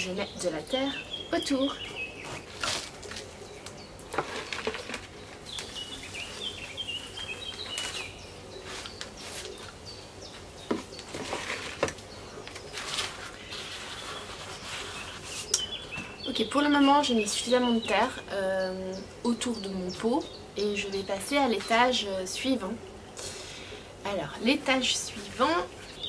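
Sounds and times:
small bird chirping: 0.0 - 11.3, 12.1 - 21.8
soil scraping and rustling: 1.8 - 3.5, 4.1 - 9.9, 10.6 - 15.9.

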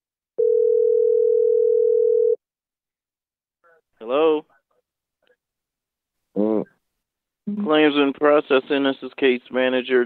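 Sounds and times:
telephone ringback tone: 0.4 - 2.4.

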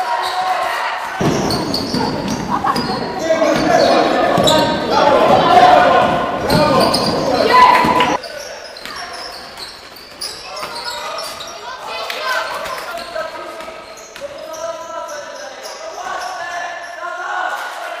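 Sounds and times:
players calling out: 0.2 - 17.0
basketball bouncing on wooden floor: 1.2 - 8.2.

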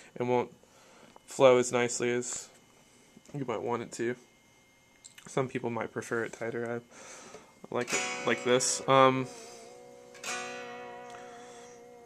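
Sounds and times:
electric guitar chord strummed: 7.8 - 12.0.

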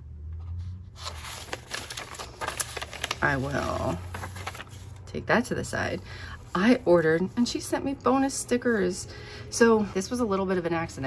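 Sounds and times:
paper rustling and crinkling: 0.6 - 5.1.

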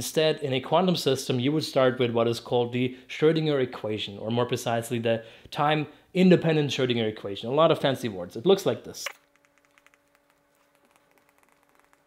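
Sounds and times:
faint steady hum: 0.0 - 12.0
stylus tapping and scratching screen: 9.1 - 12.0.

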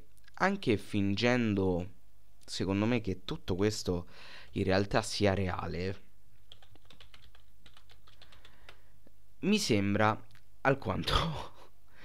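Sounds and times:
computer keyboard typing: 6.4 - 8.8.

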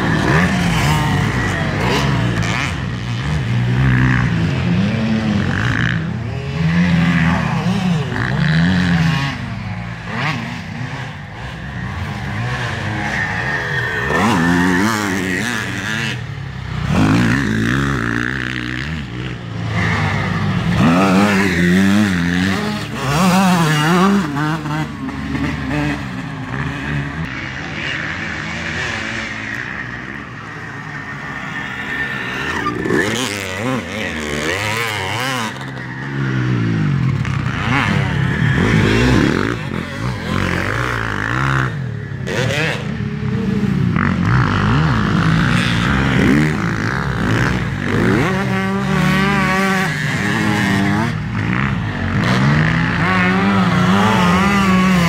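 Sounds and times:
dirt bike engines revving: 0.0 - 55.0
dirt bike passing close: 0.0 - 55.0.

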